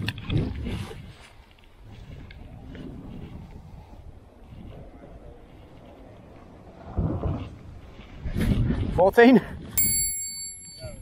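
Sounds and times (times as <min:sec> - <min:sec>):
wind buffeting microphone: 0:00.0 - 0:10.2.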